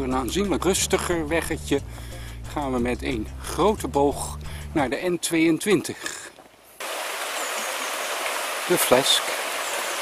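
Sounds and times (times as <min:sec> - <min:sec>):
stream running over stones: 0:06.8 - 0:10.0.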